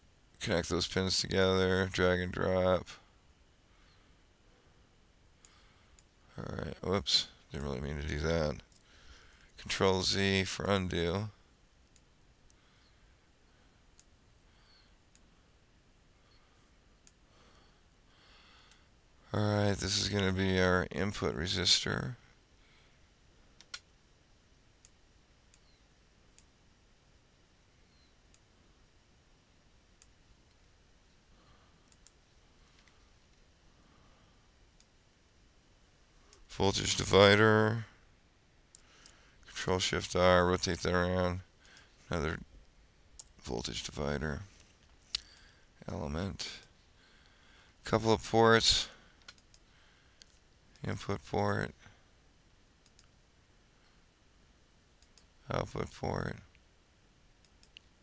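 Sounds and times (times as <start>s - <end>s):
computer mouse clicks: 23.6s - 23.9s, 31.8s - 32.2s, 49.2s - 50.4s, 52.8s - 53.2s, 55.0s - 55.3s.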